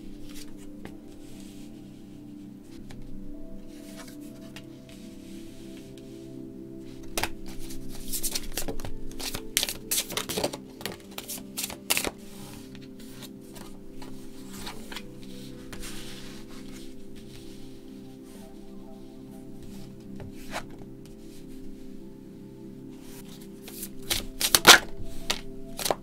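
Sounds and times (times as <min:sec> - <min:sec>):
soft background music: 0:00.0 - 0:26.0
cards snapping and flicking: 0:08.3 - 0:12.2.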